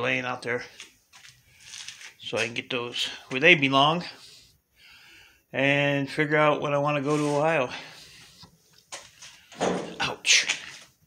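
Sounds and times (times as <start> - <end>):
bump against equipment: 9.5 - 10.1.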